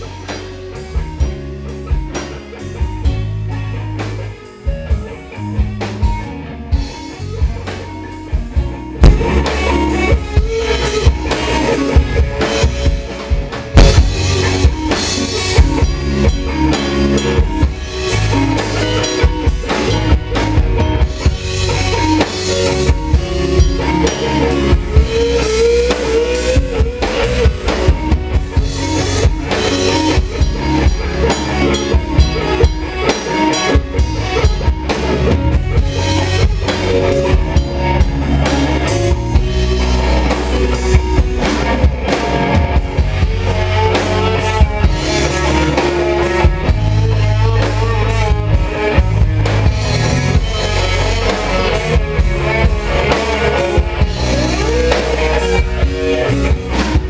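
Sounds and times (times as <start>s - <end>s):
drum kit with bass drum pulse: 0.0s - 57.0s
electric guitar: 0.0s - 57.0s.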